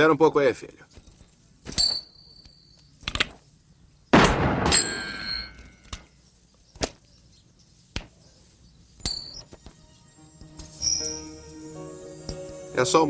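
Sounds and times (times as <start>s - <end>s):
loud metallic clang: 4.2s - 5.7s.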